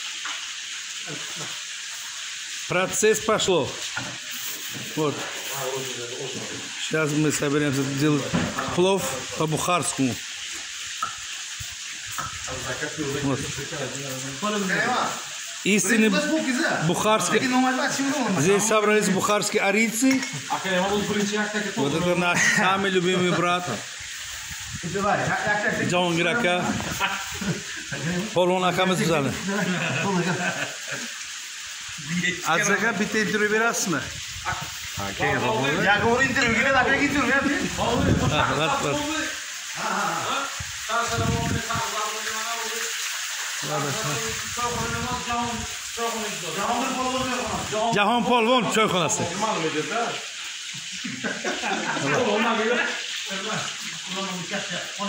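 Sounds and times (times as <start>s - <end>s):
food frying in hot oil: 0.0s - 55.0s
steady background hiss: 2.5s - 55.0s.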